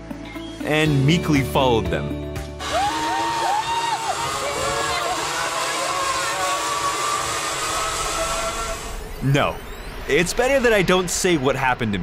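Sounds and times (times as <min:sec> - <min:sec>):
trolley whirring on cable: 0:02.6 - 0:10.1
wind rushing: 0:03.6 - 0:09.2.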